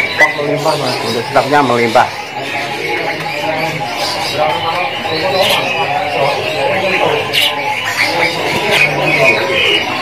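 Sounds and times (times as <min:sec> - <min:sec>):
crowd din: 0:00.0 - 0:10.0
songbirds chirping: 0:00.0 - 0:10.0.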